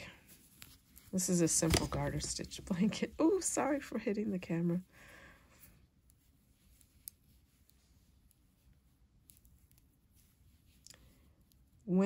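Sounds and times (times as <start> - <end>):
yarn rustling: 0.0 - 4.8, 5.5 - 12.0.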